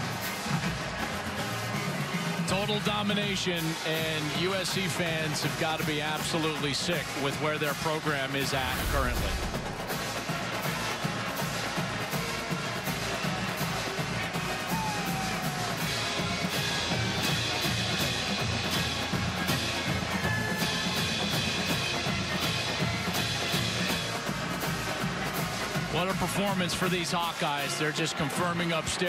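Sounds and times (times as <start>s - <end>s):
drum and cymbal beat: 0.0s - 29.0s
marching band playing: 0.0s - 29.0s.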